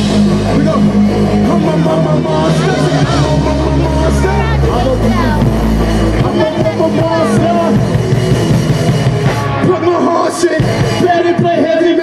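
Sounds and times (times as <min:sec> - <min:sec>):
deep bass notes: 0:00.0 - 0:12.0
lead vocals: 0:00.0 - 0:12.0
live band music: 0:00.0 - 0:12.0.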